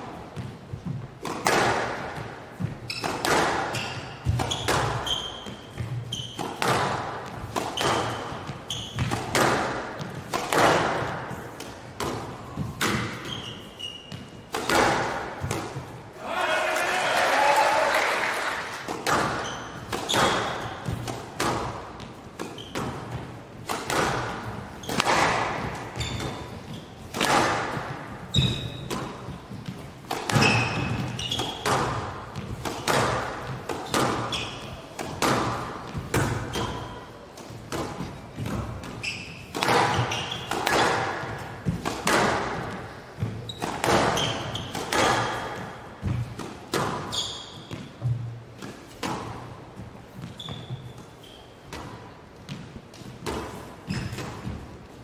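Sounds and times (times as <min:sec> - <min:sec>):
court shoes squeaking: 0:00.1 - 0:16.2, 0:18.7 - 0:55.0.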